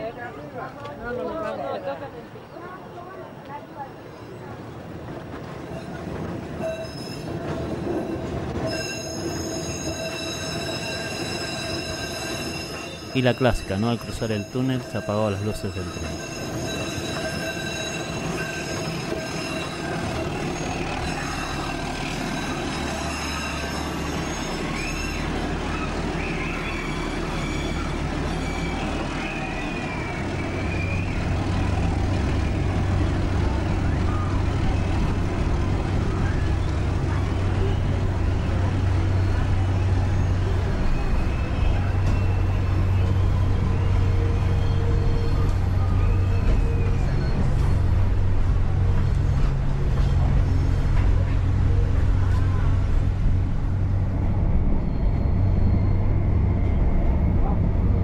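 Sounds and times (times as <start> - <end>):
train low rumble: 0.0 - 58.0
train wheel squeal: 5.1 - 52.8, 54.0 - 58.0.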